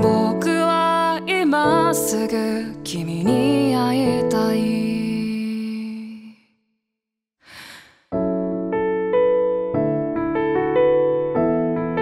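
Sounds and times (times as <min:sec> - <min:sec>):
short breath: 0:07.4 - 0:08.1.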